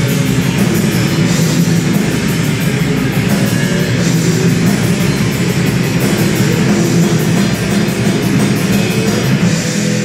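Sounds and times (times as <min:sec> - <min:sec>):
drum kit: 0:00.0 - 0:10.0
guitar: 0:00.0 - 0:10.0
live rock band playing: 0:00.0 - 0:10.0.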